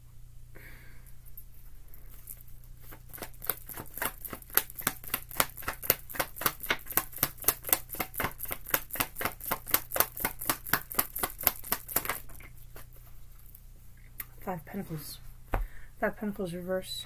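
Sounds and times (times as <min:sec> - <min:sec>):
cards being shuffled by hand: 0:02.0 - 0:13.2.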